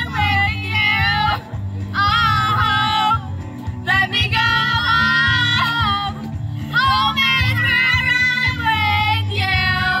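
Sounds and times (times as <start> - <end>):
karaoke backing track: 0.0 - 10.0
women singing karaoke: 0.0 - 10.0.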